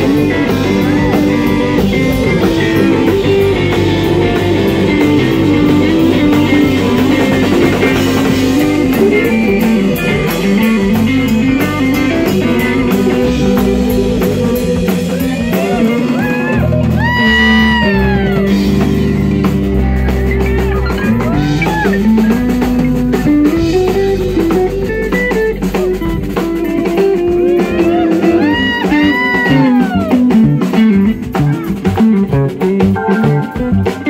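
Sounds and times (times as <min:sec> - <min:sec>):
bass guitar: 0:00.0 - 0:34.0
drum kit: 0:00.0 - 0:34.0
electric guitar lead with bends: 0:00.0 - 0:34.0
keyboard: 0:00.0 - 0:34.0.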